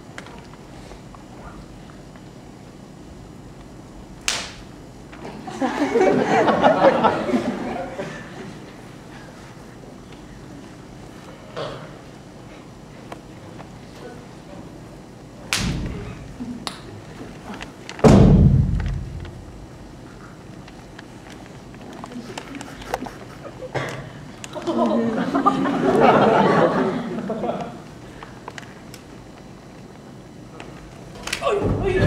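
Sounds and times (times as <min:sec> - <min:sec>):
sharp snap: 0:04.2 - 0:04.7, 0:15.5 - 0:16.0
heavy thuds: 0:18.0 - 0:19.7.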